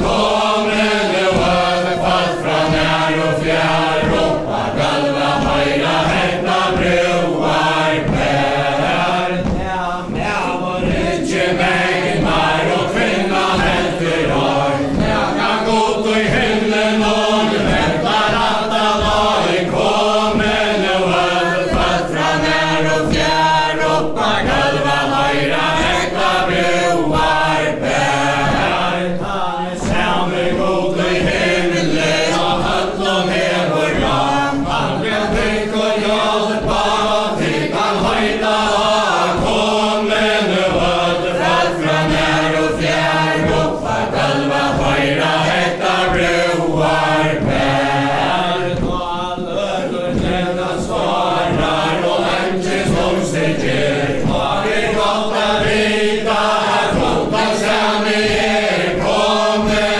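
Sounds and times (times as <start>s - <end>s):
footsteps knocking on wooden floor: 0.0s - 59.9s
group singing in unison: 0.0s - 59.9s.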